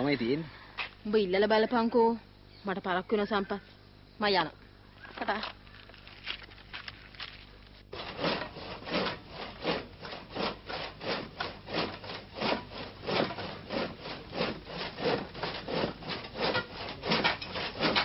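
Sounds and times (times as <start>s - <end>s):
rhythmic rasping scraping: 7.9s - 18.0s.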